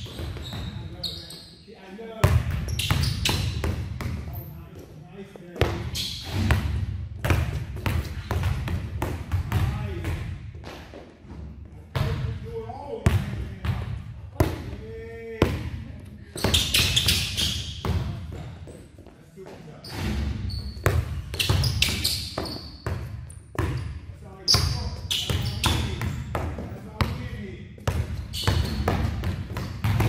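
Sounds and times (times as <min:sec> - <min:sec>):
basketballs bouncing on gym floor: 0:00.0 - 0:01.2, 0:02.2 - 0:04.9, 0:05.5 - 0:18.8, 0:19.9 - 0:30.0.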